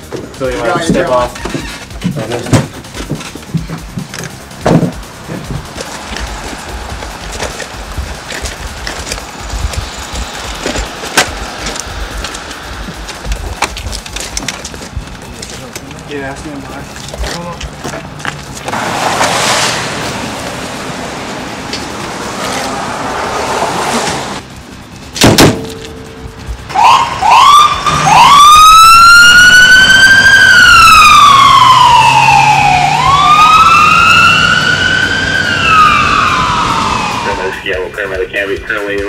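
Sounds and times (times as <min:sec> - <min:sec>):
sharp bang: 0:25.2 - 0:26.0
ambulance siren: 0:25.8 - 0:38.0.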